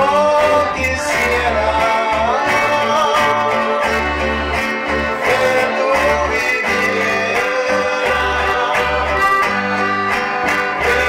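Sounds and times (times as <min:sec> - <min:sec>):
accordion: 0:00.0 - 0:11.0
acoustic guitar: 0:00.0 - 0:11.0
electric bass: 0:00.0 - 0:11.0.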